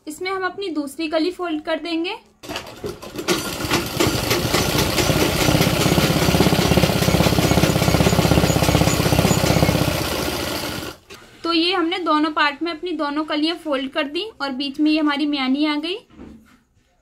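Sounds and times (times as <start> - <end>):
sewing machine stitching: 2.4 - 11.2.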